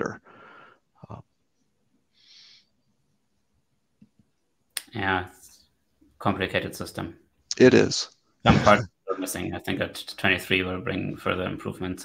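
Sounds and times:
man speaking: 0:06.2 - 0:12.0.

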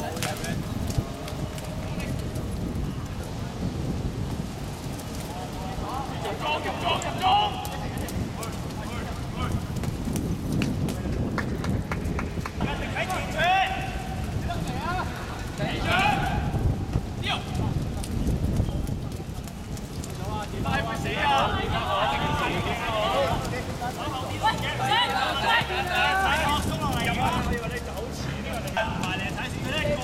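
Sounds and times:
footsteps on wet court: 0:00.0 - 0:30.0
low uneven rumble: 0:00.0 - 0:30.0
outdoor background rush: 0:00.0 - 0:30.0.

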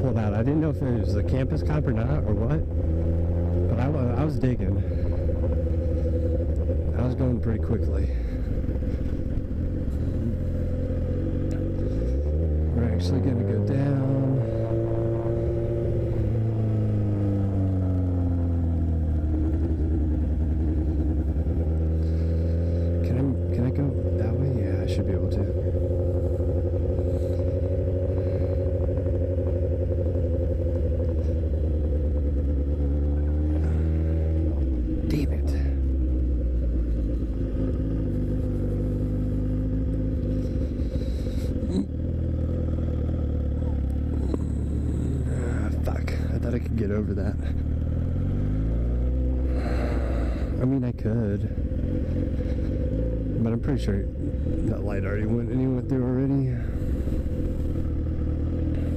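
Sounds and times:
motorcycle engine running at low revs: 0:00.0 - 0:58.9.

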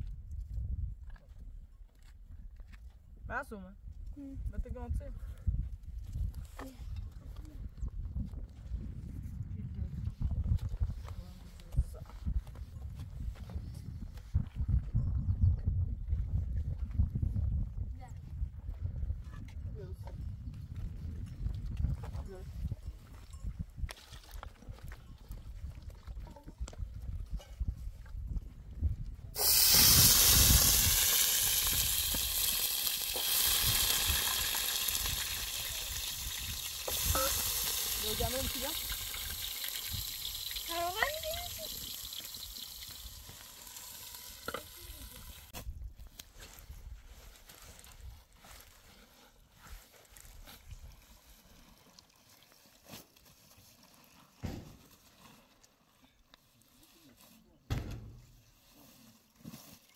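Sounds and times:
food sizzling in hot oil: 0:29.4 - 0:45.5.

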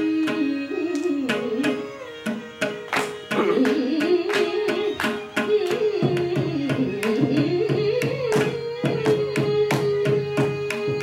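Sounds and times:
woman singing: 0:00.0 - 0:02.0, 0:03.4 - 0:11.0
violin melody: 0:00.0 - 0:11.0.

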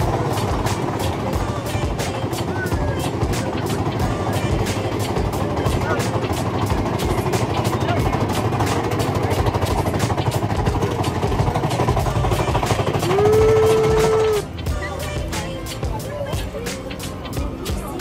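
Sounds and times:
roller coaster rumbling on track: 0:00.0 - 0:18.0.

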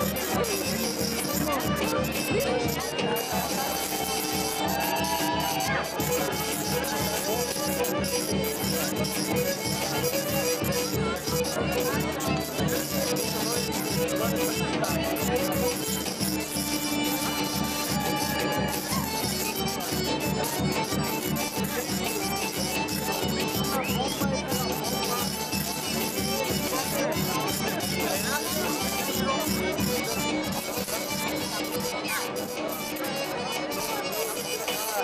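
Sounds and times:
folk dance music: 0:00.0 - 0:35.0.

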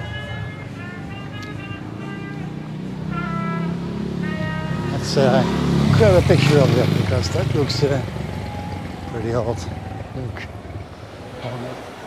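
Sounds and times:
background music: 0:00.0 - 0:10.0
street traffic: 0:00.0 - 0:12.0
motorcycle engine approaching: 0:00.8 - 0:11.4.

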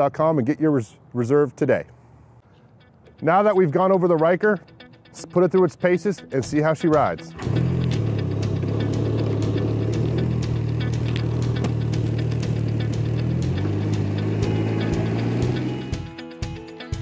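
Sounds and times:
guitar music: 0:02.6 - 0:17.0
trike engine running at low revs: 0:07.4 - 0:16.1.

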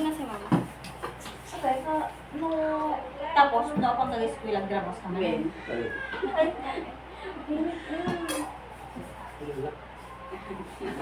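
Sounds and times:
people talking at table: 0:00.0 - 0:11.0.

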